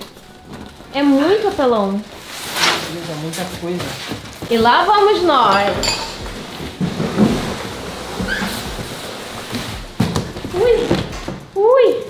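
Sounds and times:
cardboard sheets rustling and scraping: 0:00.0 - 0:05.6, 0:06.2 - 0:11.5.

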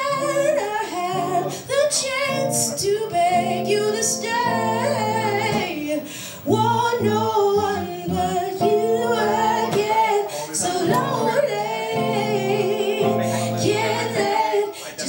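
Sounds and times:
acoustic guitar accompaniment: 0:00.0 - 0:15.0
woman singing slow song: 0:00.0 - 0:15.0.

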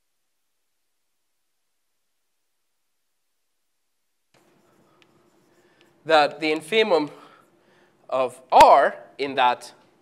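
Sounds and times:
light chalk taps: 0:04.3 - 0:06.8
chalk scratching on blackboard: 0:04.4 - 0:07.2.

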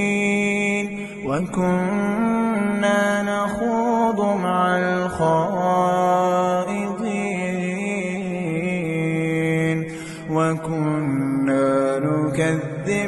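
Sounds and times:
man chanting melodically: 0:00.0 - 0:13.0.

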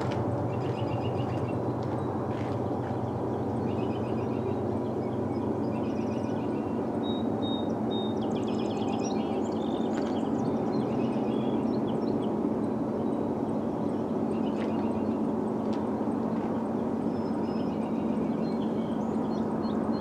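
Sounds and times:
diesel locomotives rumbling: 0:00.0 - 0:07.4
songbirds chirping: 0:00.0 - 0:20.0.

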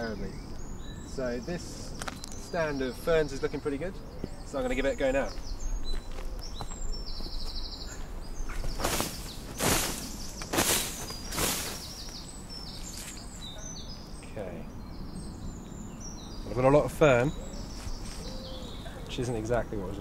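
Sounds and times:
net swishing through ferns: 0:08.7 - 0:13.3.

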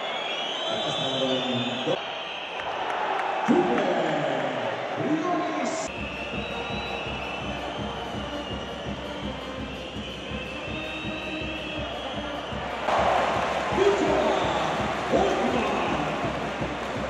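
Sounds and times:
arena crowd noise: 0:00.0 - 0:17.0
bass drum: 0:05.9 - 0:17.0
brass band playing: 0:06.0 - 0:17.0.

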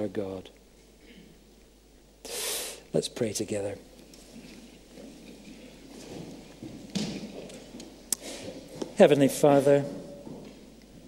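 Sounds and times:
low shuffling noise: 0:03.8 - 0:11.0.

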